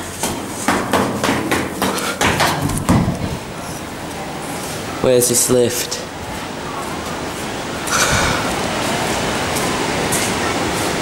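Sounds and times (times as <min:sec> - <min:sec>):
footsteps going down stairs: 0:00.0 - 0:04.8
heavy thud: 0:02.2 - 0:03.5.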